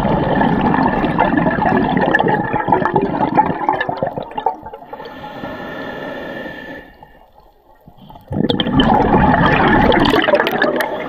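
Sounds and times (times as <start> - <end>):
exhaled bubbles rushing underwater: 0.0 - 5.2, 7.0 - 11.0
regulator hissing inhale: 4.9 - 7.4.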